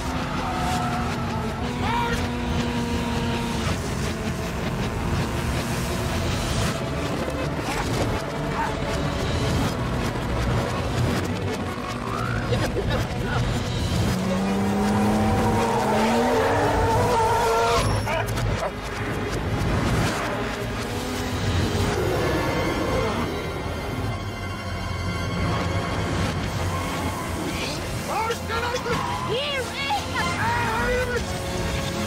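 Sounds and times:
film music score: 0.0 - 32.0
heavy vehicle engines: 0.0 - 32.0.

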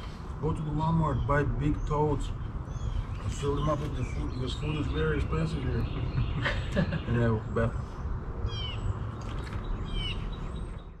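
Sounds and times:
bird call: 8.5 - 11.0.

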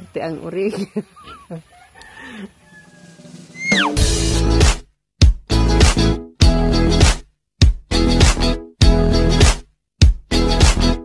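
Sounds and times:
chickens calling: 1.0 - 4.0.

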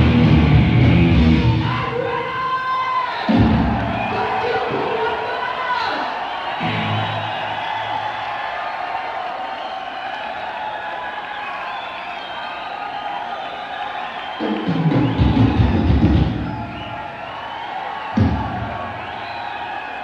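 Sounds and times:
heavy metal band playing live: 0.0 - 1.7
crowd cheering: 0.0 - 20.0.

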